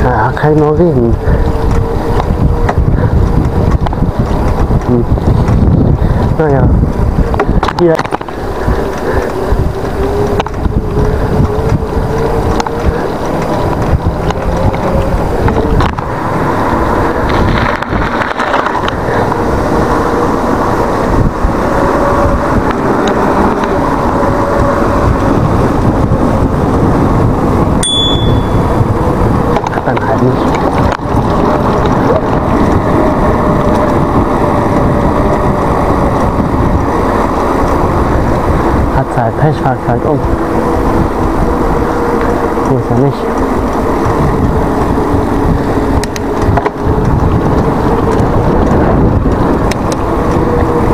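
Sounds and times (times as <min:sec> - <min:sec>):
bike tyres rolling on asphalt: 0:00.0 - 0:50.9
wind buffeting microphone: 0:00.0 - 0:50.9
short bright ding: 0:27.8 - 0:28.6.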